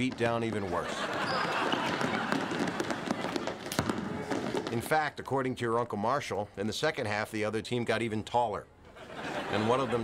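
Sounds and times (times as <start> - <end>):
basketball bouncing on hardwood floor: 1.7 - 4.9.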